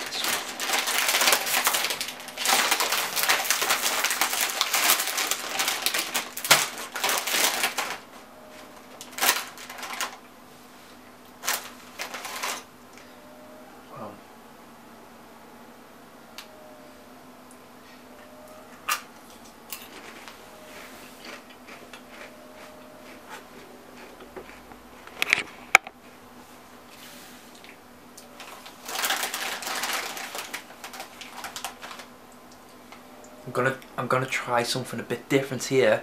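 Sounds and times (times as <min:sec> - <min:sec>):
foil crisp packet crinkling: 0:00.0 - 0:10.3, 0:11.4 - 0:12.7, 0:28.4 - 0:32.1
faint steady hum: 0:00.0 - 0:36.0.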